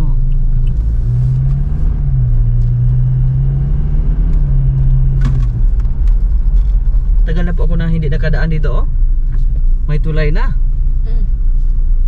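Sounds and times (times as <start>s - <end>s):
car engine drone: 0.0s - 12.0s
road noise: 0.0s - 12.0s.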